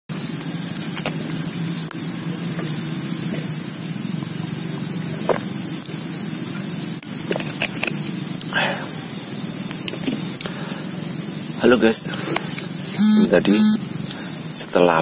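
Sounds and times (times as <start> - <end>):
outdoor background drone: 0.1 - 14.8.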